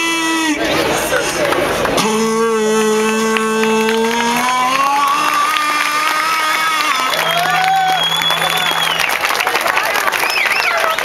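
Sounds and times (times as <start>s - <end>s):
man singing: 0.0s - 0.8s, 2.0s - 7.6s
acoustic guitar: 0.1s - 9.4s
crowd cheering and clapping: 0.8s - 11.0s.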